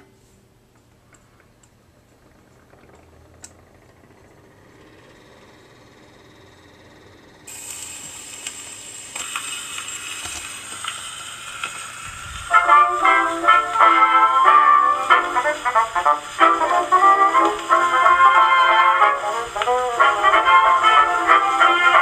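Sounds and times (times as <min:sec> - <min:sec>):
record surface hiss and crackle: 0:00.0 - 0:22.0
turntable clicks: 0:07.5 - 0:11.9, 0:15.2 - 0:22.0.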